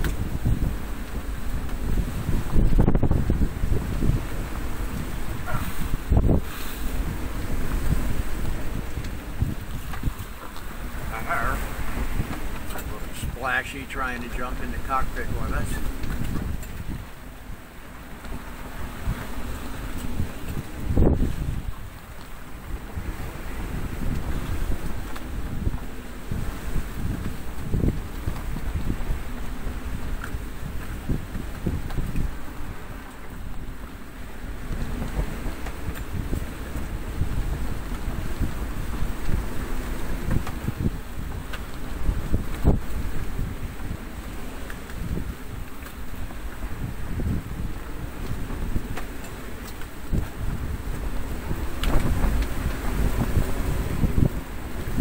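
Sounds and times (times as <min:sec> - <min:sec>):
strong wind: 0:00.0 - 0:55.0
waves breaking: 0:00.0 - 0:55.0.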